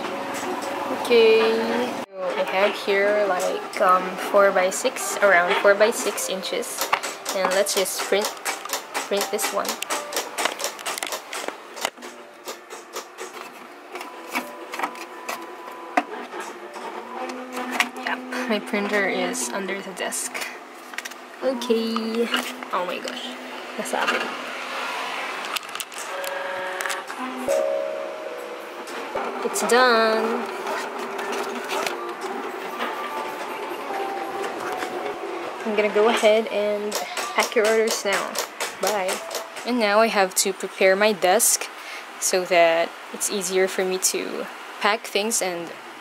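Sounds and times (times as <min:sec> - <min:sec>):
printer feeding paper: 0:29.2 - 0:35.4.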